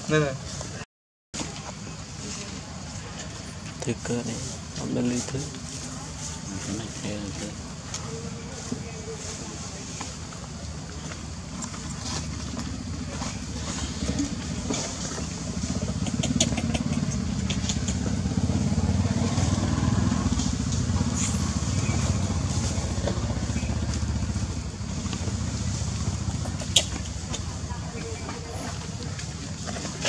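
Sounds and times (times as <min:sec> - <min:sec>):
motor engine rumbling: 0:01.4 - 0:30.0.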